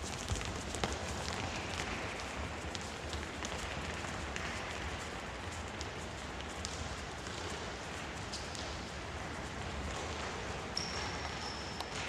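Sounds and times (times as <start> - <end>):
children's footsteps on hall floor: 0.0 - 12.0.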